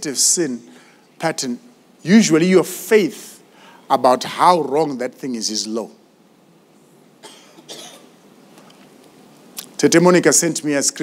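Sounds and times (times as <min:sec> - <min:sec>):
faint cough: 0:07.2 - 0:08.2.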